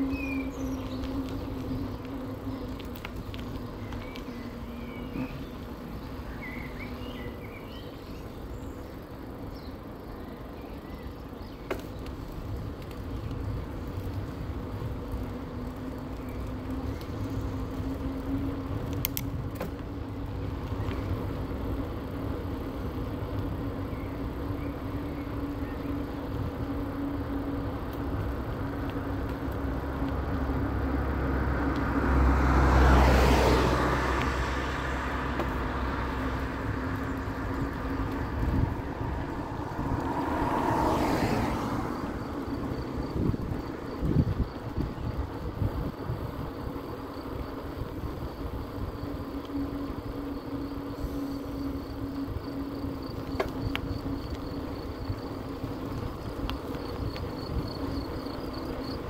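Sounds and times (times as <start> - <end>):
bicycle tyres on asphalt: 0.0 - 59.0
vehicles passing: 0.0 - 59.0
wind noise: 36.4 - 59.0.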